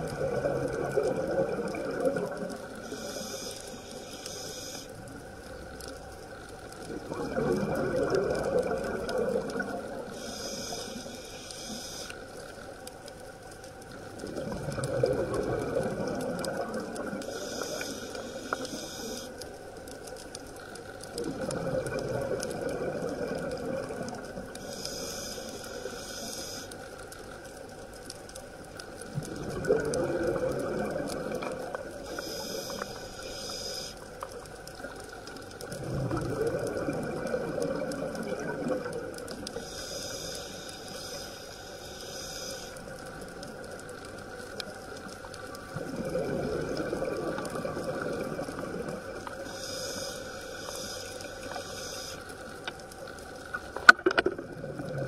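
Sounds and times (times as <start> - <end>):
exhaled bubbles bursting: 0.0 - 2.5, 6.9 - 10.0, 14.2 - 17.2, 21.2 - 24.4, 29.1 - 32.0, 35.6 - 39.4, 45.6 - 49.3, 53.8 - 55.0
regulator hissing inhalation: 2.8 - 5.0, 10.1 - 12.2, 17.2 - 19.4, 24.6 - 26.8, 32.0 - 34.0, 39.6 - 42.8, 49.4 - 52.3.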